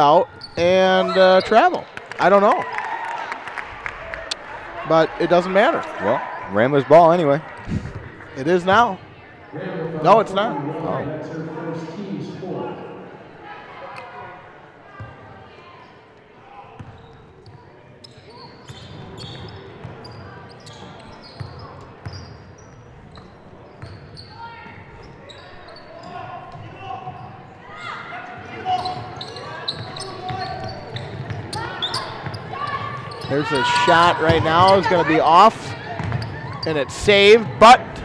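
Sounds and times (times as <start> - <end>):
voices of players and spectators: 0.0 - 38.0
basketball bouncing on court: 16.8 - 17.6, 23.1 - 24.8, 28.8 - 33.3, 34.1 - 35.0, 35.8 - 36.6.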